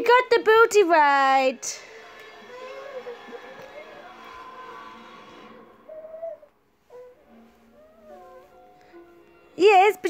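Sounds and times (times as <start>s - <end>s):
baby vocalizing: 2.2s - 8.6s.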